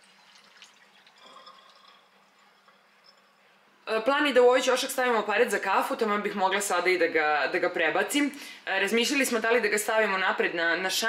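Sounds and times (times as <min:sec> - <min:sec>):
water trickling into sink strainer: 0:00.0 - 0:03.4.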